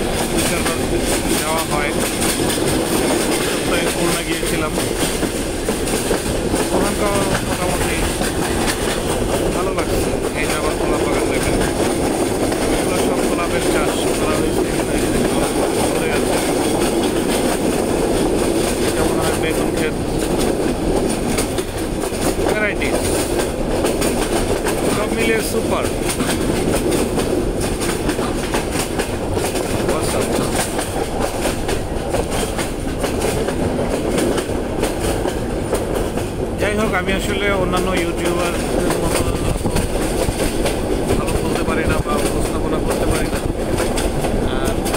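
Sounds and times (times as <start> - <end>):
train rumble with wheel clatter: 0.0 - 44.9.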